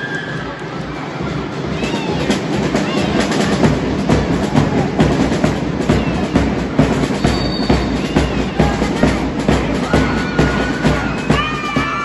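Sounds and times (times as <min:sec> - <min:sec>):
dense background din: 0:00.0 - 0:12.0
marching band drums beating: 0:00.4 - 0:12.0.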